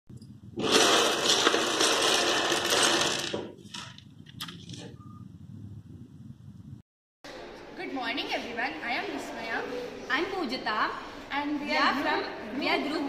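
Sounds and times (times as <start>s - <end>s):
plastic blocks clattering: 0.6s - 4.0s.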